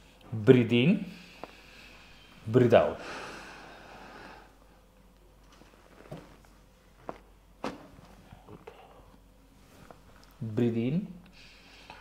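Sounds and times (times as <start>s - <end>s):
person exhaling: 2.9s - 4.6s.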